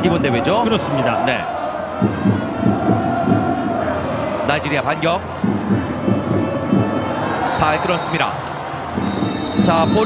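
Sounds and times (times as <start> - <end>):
stadium crowd noise: 0.0 - 10.0
drums thumping: 1.8 - 8.2, 8.8 - 10.0.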